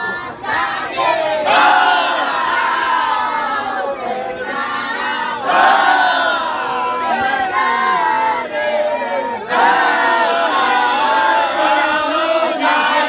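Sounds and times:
male voices chanting together: 0.0 - 13.0.

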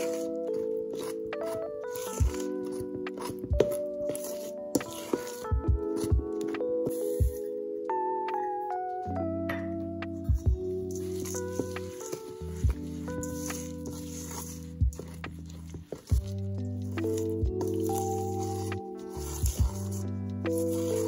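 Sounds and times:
spoon stirring sticky batter: 0.0 - 7.3, 10.5 - 21.0
soft background music: 0.0 - 21.0.

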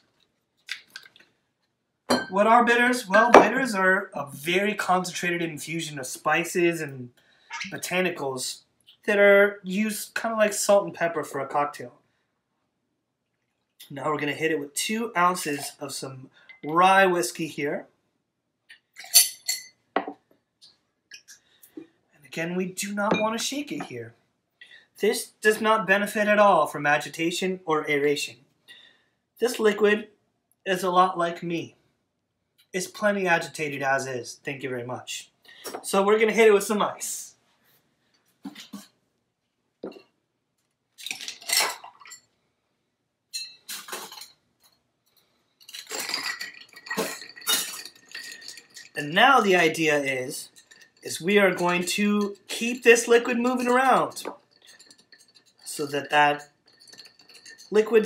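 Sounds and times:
metal jigger clinking on glass: 2.1 - 2.4, 19.0 - 20.1, 41.2 - 42.2, 45.6 - 58.0.

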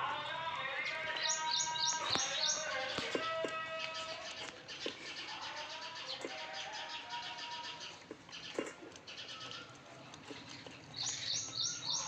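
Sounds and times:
birds chirping: 0.0 - 12.0
dog eating from metal bowl: 2.3 - 12.0.

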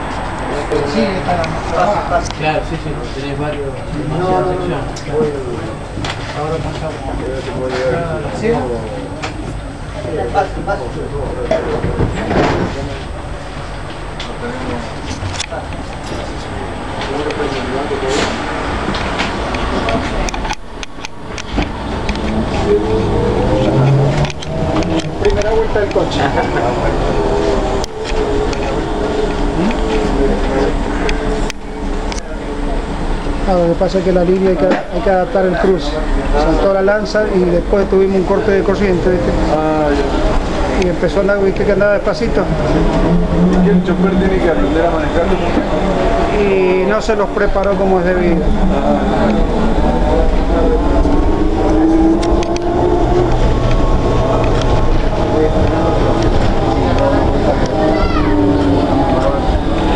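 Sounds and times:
passengers' voices: 0.0 - 59.9
low hum: 8.8 - 59.9
trolleybus cabin rumble: 10.9 - 33.5, 37.7 - 46.7, 47.3 - 59.9.

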